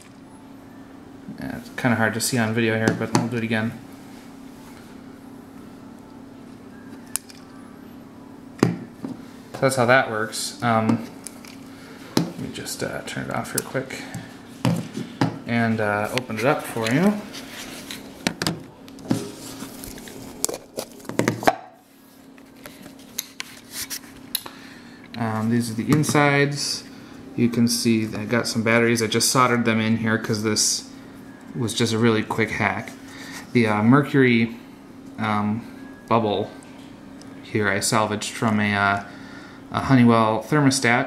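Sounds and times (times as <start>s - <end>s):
high capacitor whine: 0.0s - 41.0s.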